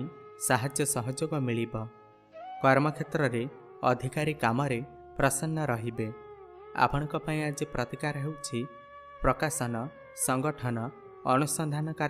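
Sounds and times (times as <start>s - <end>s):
man narrating: 0.0s - 1.9s, 2.6s - 6.2s, 6.8s - 12.0s
soft background music: 0.0s - 12.0s.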